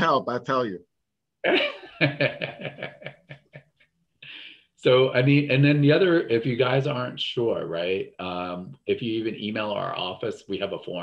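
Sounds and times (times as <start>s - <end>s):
man laughing: 1.4s - 4.4s.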